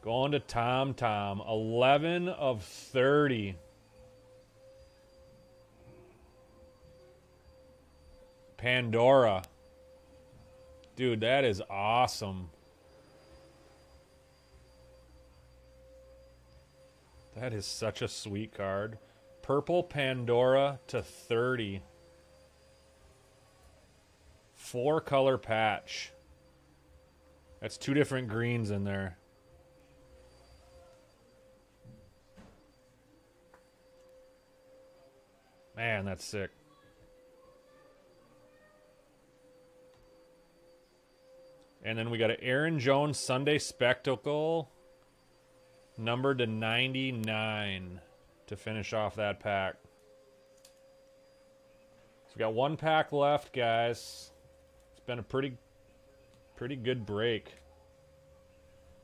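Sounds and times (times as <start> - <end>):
faint steady hum: 0.0 - 59.0
faint steady tone: 0.0 - 59.0.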